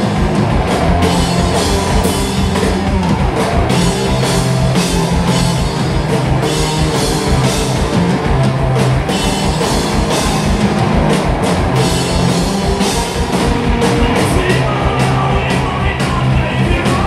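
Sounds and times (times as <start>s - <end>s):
distorted electric guitar: 0.0s - 17.0s
electric bass: 0.0s - 17.0s.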